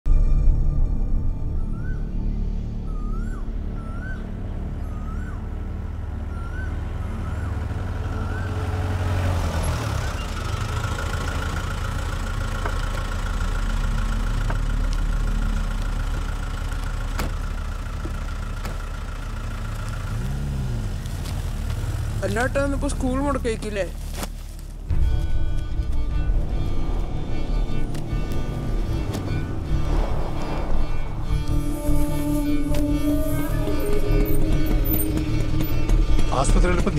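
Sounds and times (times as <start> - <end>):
low rumble: 0.1 - 8.4, 24.0 - 36.9
pulsing whine: 0.1 - 8.8, 24.9 - 36.4
vehicle engine and road noise: 0.2 - 36.9.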